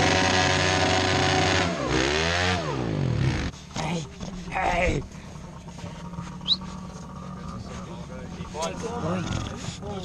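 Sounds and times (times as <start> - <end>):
dirt bike engines idling: 0.0 - 10.0.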